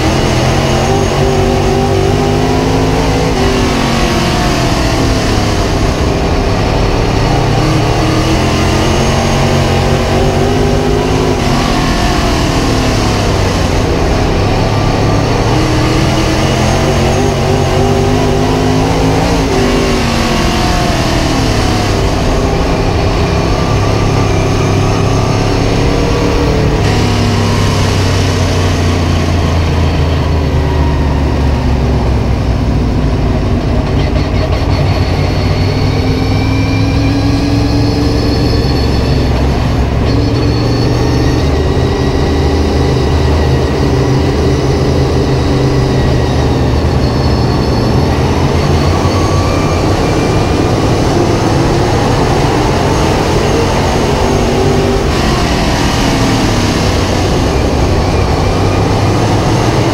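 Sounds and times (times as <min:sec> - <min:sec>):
racing car engine revving: 0:00.0 - 0:59.9.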